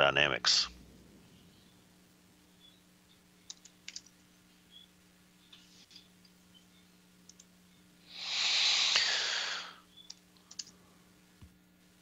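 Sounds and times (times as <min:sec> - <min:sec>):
faint steady hum: 0:00.0 - 0:12.0
computer keyboard clicks: 0:03.5 - 0:04.1, 0:07.2 - 0:07.5, 0:10.0 - 0:10.8
loud rushing hiss: 0:08.1 - 0:09.8.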